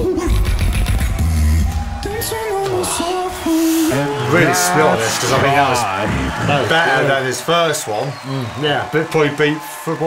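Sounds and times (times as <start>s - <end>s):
beatboxing: 0.0s - 1.7s.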